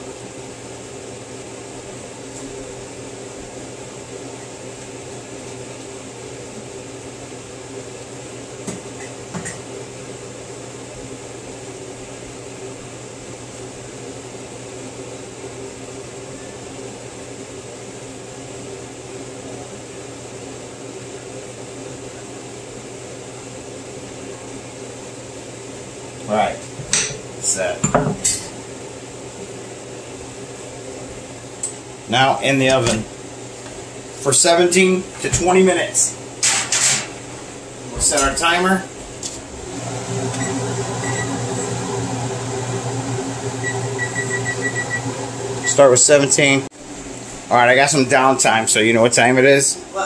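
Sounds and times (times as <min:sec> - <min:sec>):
kitchen appliance fan hum: 0:00.0 - 0:50.0.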